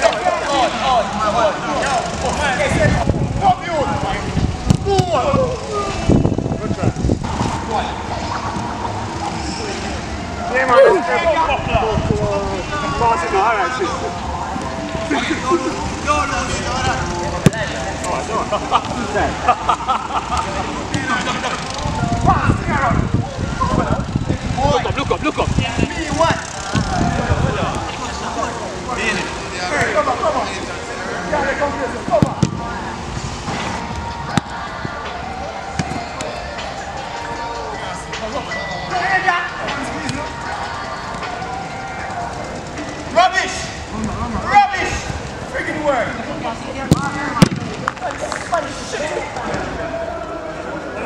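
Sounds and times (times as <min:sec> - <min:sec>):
players calling and shouting: 0:00.0 - 0:51.0.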